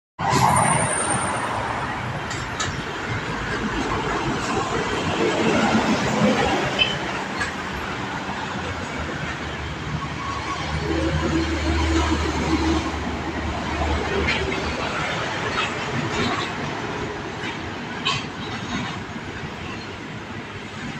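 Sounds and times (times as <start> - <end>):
highway traffic passing: 0.2 - 20.9.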